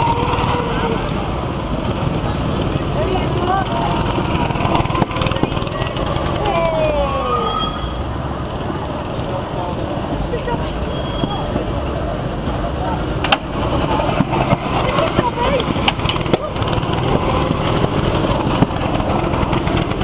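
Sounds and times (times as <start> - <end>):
go-kart engines rumbling: 0.0 - 20.0
people's voices: 0.0 - 20.0.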